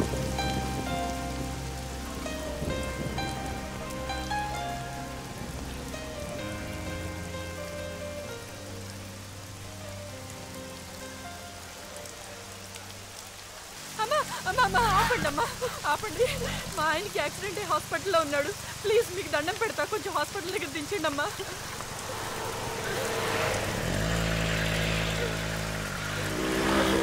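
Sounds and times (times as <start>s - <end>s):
soft slow film score: 0.0s - 17.3s, 20.4s - 27.0s
heavy rain falling: 0.0s - 27.0s.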